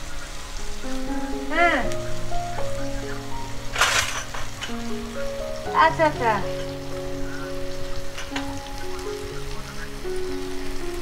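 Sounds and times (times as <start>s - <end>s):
food sizzling in a pan: 0.0s - 11.0s
soft music of slow held notes: 0.0s - 11.0s
wood fire crackles: 0.0s - 11.0s.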